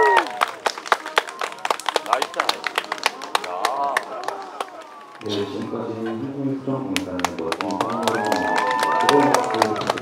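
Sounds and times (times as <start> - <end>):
cheers and calls: 0.0 - 0.6, 7.7 - 10.0
audience clapping: 0.0 - 5.3, 6.8 - 10.0
many voices: 1.3 - 8.1.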